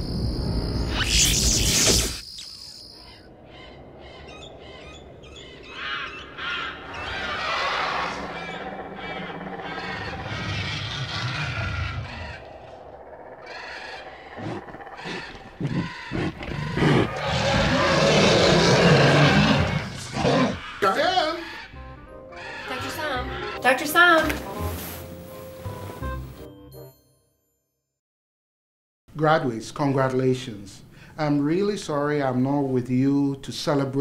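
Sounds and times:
cawing bird calls: 2.4 - 18.1, 19.7 - 23.6
animal cries: 3.0 - 21.8, 22.4 - 23.6
loud creature cry: 13.5 - 21.7.

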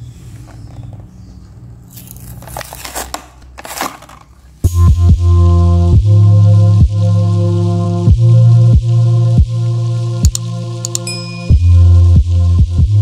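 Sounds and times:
plastic packaging crinkling: 1.9 - 4.6
loud music with beat: 4.7 - 13.0.

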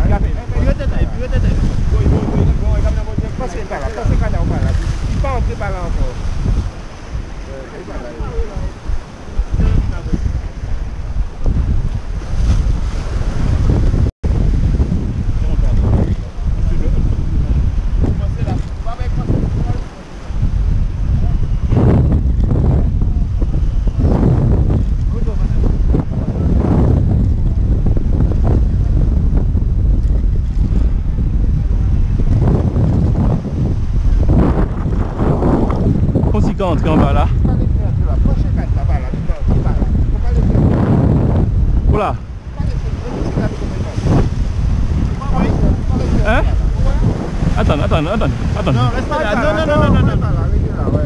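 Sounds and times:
waves washing against rocks: 0.0 - 21.0, 24.0 - 51.0
wind buffeting microphone: 0.0 - 51.0.

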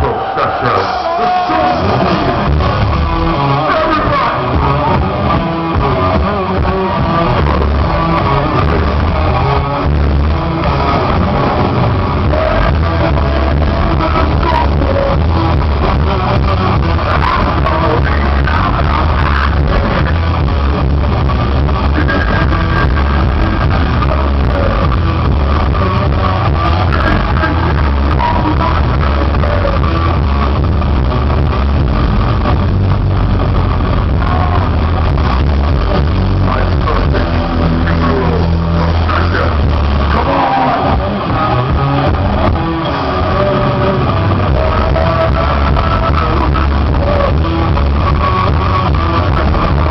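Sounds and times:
heavy metal band playing live: 0.0 - 49.9.

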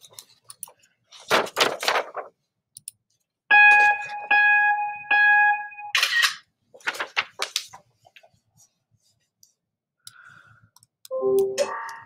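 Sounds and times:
electronic countdown beeps: 3.5 - 5.9, 11.1 - 12.0.

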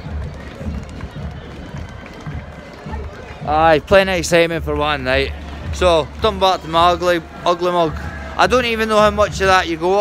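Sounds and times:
crowd chatter: 0.0 - 10.0
faint marching band music: 0.0 - 10.0.

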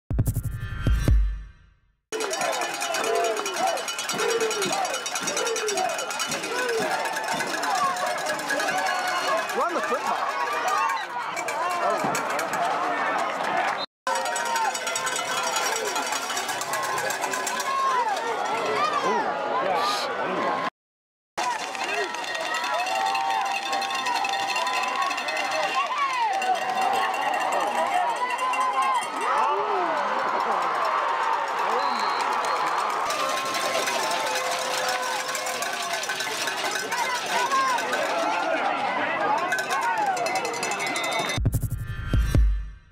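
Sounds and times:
crowd shouting and yelling: 2.1 - 20.7, 21.4 - 42.7.

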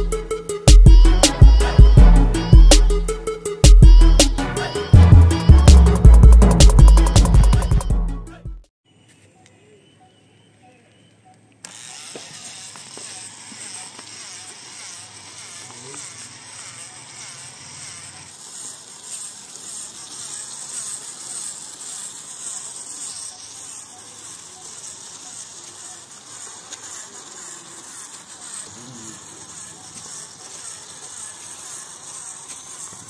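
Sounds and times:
small electric motor whining: 0.0 - 7.9, 11.5 - 33.0.

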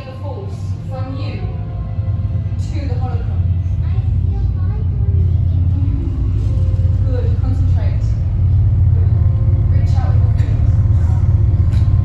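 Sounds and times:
deep steady rumble: 0.0 - 12.0
faint wavering voice-like sounds: 0.7 - 11.7.

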